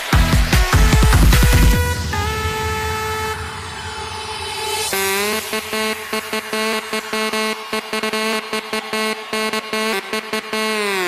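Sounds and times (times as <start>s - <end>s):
chopped pulsing rhythm: 0.0s - 11.0s
horn-like synth chord: 0.0s - 11.0s.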